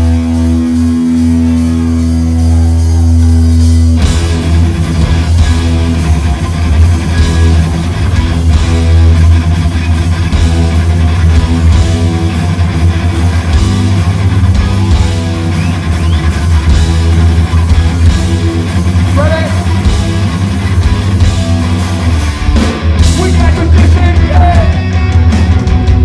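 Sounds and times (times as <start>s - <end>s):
punk band playing live: 0.0s - 26.0s.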